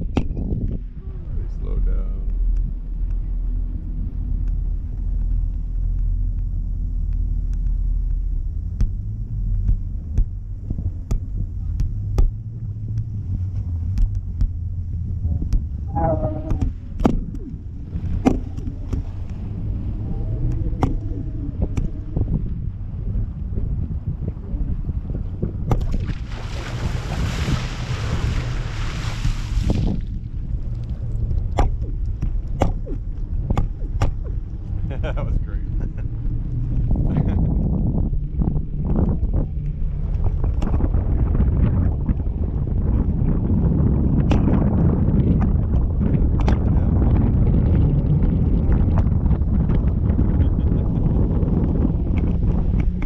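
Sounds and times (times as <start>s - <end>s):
wind buffeting microphone: 0.0s - 53.0s.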